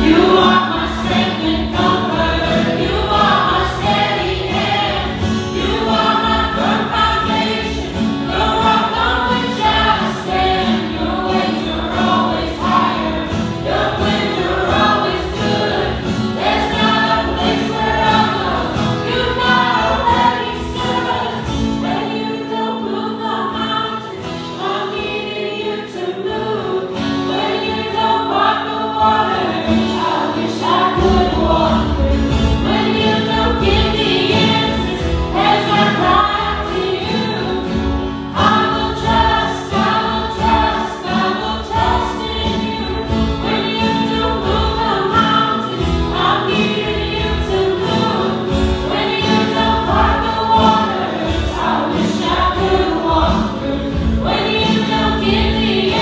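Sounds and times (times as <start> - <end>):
acoustic and electric guitars: 0.0 - 56.0
group of voices singing: 0.0 - 56.0.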